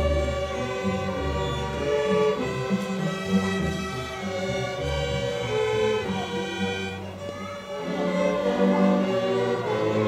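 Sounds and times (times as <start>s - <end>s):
string orchestra playing held chords: 0.0s - 10.0s.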